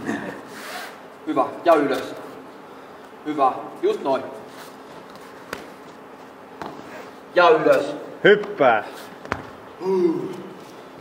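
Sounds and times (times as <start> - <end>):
faint hall background: 0.0 - 11.0.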